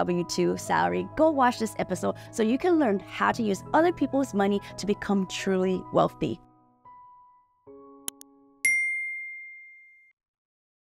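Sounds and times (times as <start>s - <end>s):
bright bell ding: 8.6s - 10.1s.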